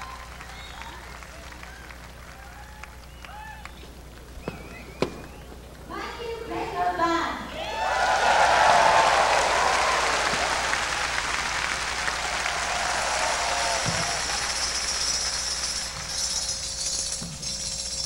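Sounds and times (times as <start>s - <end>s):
crowd applauding: 0.0s - 5.5s, 7.6s - 16.2s
tambourine jingling: 12.7s - 18.0s.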